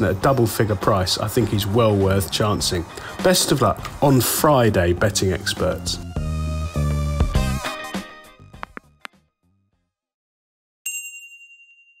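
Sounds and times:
bright bell ding: 0:10.9 - 0:12.0.

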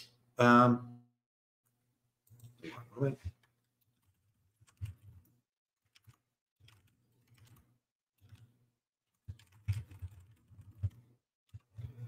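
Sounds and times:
computer keyboard typing: 0:03.8 - 0:08.5, 0:09.1 - 0:12.0.

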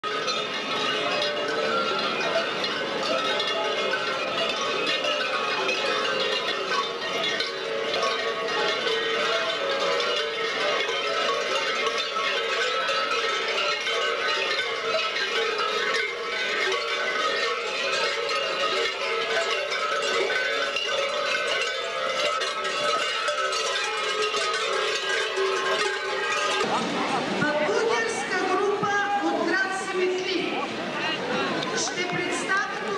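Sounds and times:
large metal bells clanging: 0:00.0 - 0:32.9.

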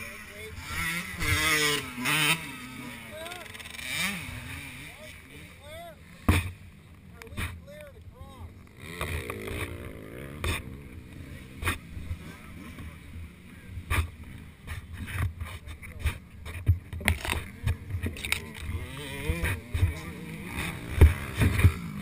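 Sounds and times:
dirt bike engines revving: 0:00.0 - 0:22.0.

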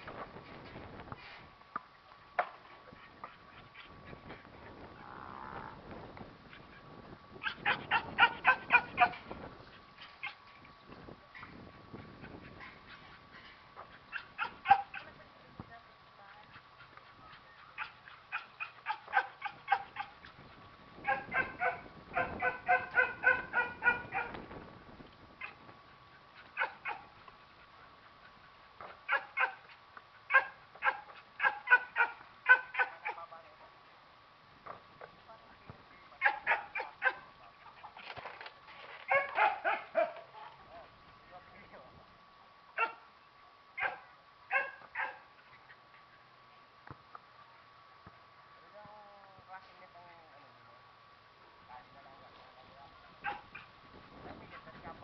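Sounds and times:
faint high hum: 0:00.0 - 0:55.0
dog barking: 0:07.4 - 0:09.2, 0:14.1 - 0:15.1, 0:17.8 - 0:20.1, 0:21.0 - 0:24.4, 0:26.6 - 0:27.1, 0:29.1 - 0:29.6, 0:30.3 - 0:33.2, 0:36.2 - 0:37.2, 0:39.1 - 0:40.3, 0:42.8 - 0:43.0, 0:43.8 - 0:45.2, 0:53.2 - 0:53.7.

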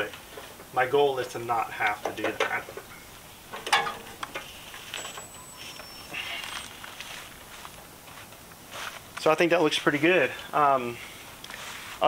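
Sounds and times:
faint scrapes and rustling: 0:04.4 - 0:09.2, 0:10.9 - 0:12.0.

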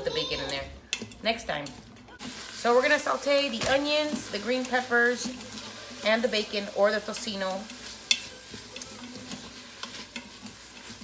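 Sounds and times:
food sizzling in oil: 0:00.0 - 0:11.0
utensil scraping metal pot: 0:00.1 - 0:11.0.

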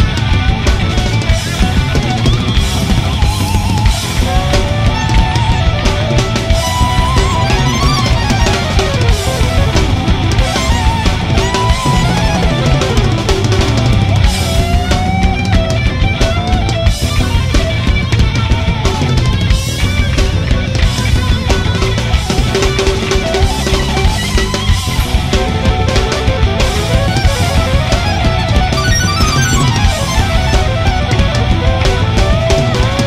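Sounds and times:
busy drum kit: 0:00.0 - 0:33.0
lead electric guitar bending notes: 0:00.0 - 0:33.0.

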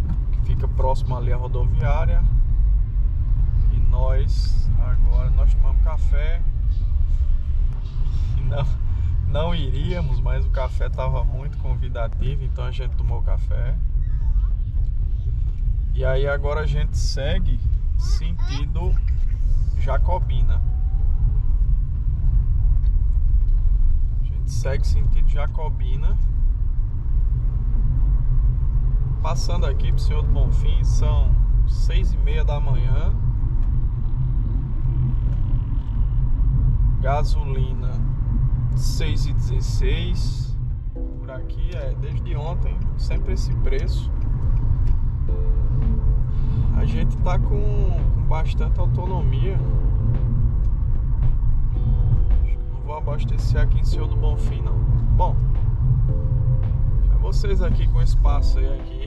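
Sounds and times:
car engine: 0:00.0 - 0:59.0.

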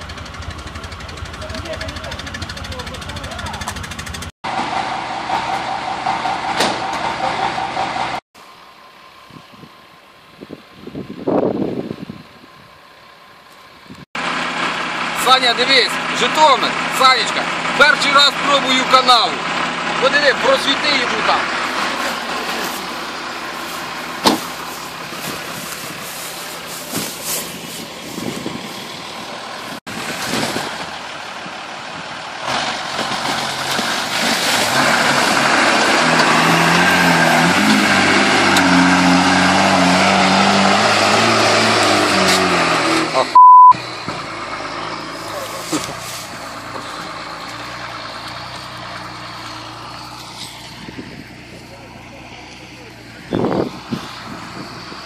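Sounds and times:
engine revving hard: 0:32.4 - 0:45.6
loud electronic beep: 0:43.3 - 0:43.8.

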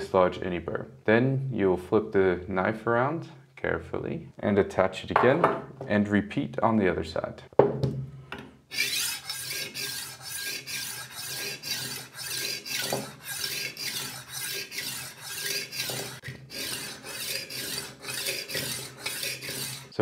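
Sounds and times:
knife sharpener rasping scrape: 0:08.7 - 0:20.0.

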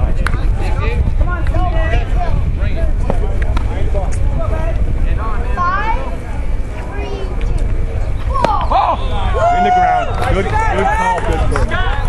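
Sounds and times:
people talking and calling: 0:00.0 - 0:12.0
wind rumble on microphone: 0:00.0 - 0:12.0.

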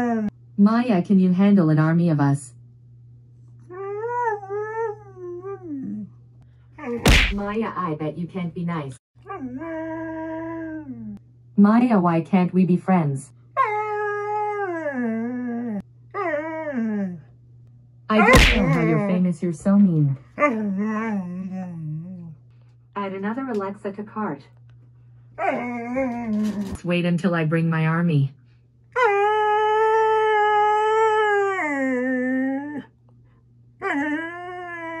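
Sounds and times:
dog howling: 0:29.0 - 0:32.9, 0:33.8 - 0:35.0.

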